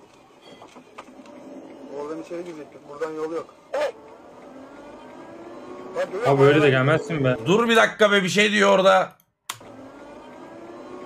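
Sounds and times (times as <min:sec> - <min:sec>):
van engine accelerating: 0:00.0 - 0:11.0.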